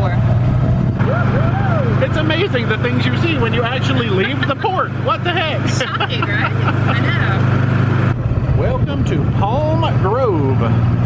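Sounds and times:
golf cart motor droning: 0.2 - 8.7.

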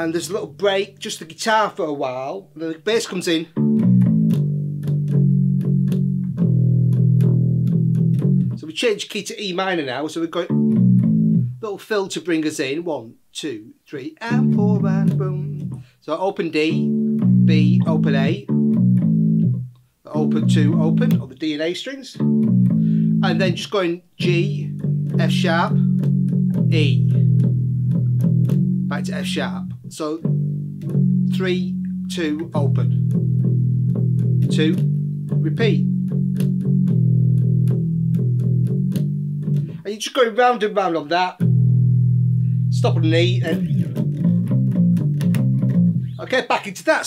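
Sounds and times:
electric bass guitar riff: 0.0 - 1.3, 3.5 - 8.7, 10.4 - 11.6, 14.2 - 15.9, 16.6 - 21.4, 22.2 - 39.9, 41.4 - 46.4.

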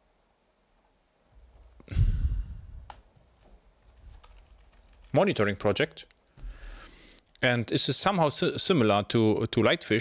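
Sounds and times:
low noise burst on microphone: 1.3 - 5.8
keyboard typing: 4.1 - 5.2.

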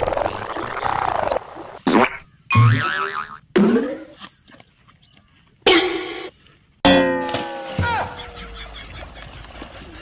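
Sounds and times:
wobbling boing tone: 6.8 - 7.6.

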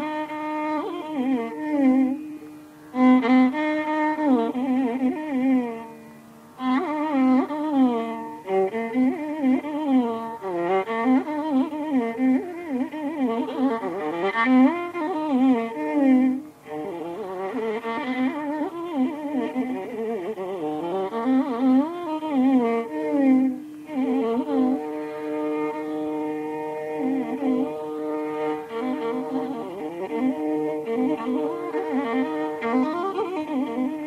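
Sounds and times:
violin melody with sliding notes: 0.0 - 34.0.

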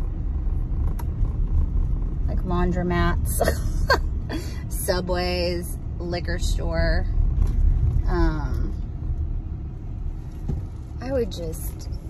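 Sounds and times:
car engine and road rumble: 0.0 - 12.0
click inside car: 0.7 - 2.2.

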